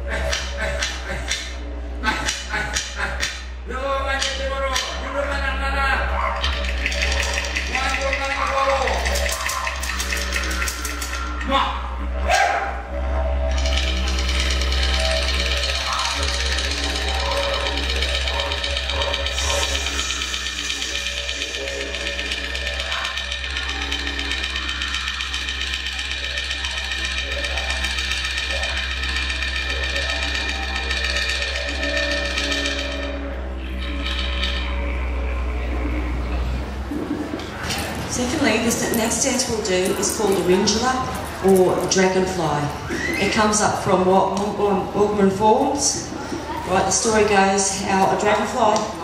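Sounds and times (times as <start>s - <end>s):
didgeridoo drone: 0.0s - 49.0s.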